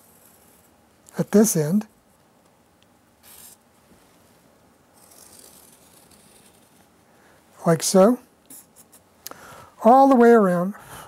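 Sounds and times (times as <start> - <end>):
marker scratching: 0.0 - 0.7, 3.2 - 3.6, 5.0 - 6.9.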